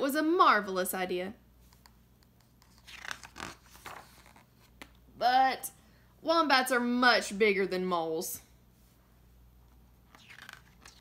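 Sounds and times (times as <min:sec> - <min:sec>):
book page turning: 0:01.6 - 0:04.9, 0:10.0 - 0:11.0.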